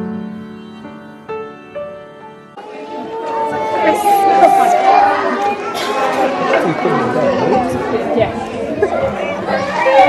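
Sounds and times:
young children chattering: 0:02.6 - 0:10.0.

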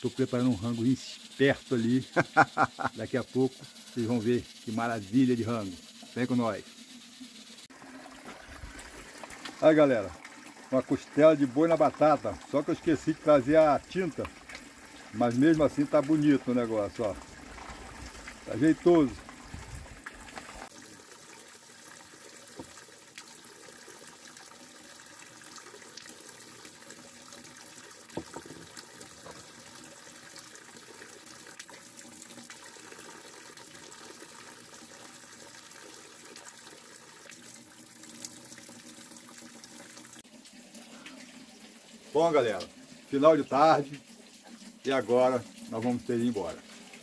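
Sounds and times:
running water: 0:00.0 - 0:47.0.

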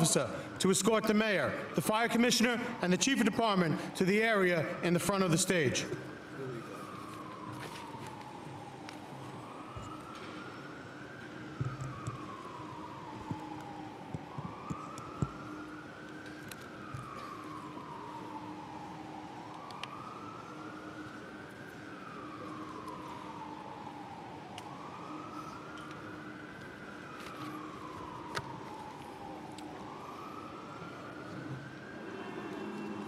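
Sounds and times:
emergency siren wailing: 0:00.0 - 0:33.0.

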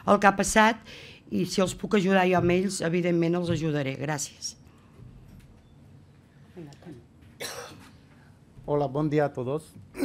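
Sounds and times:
person coughing: 0:07.4 - 0:07.9.

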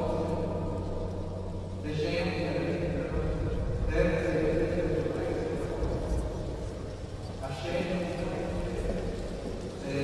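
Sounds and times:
man speaking: 0:01.8 - 0:06.0, 0:07.4 - 0:09.2, 0:09.8 - 0:10.0.

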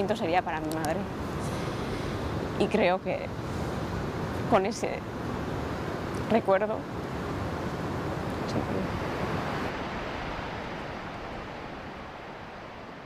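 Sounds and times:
steady rushing noise: 0:00.0 - 0:13.0.

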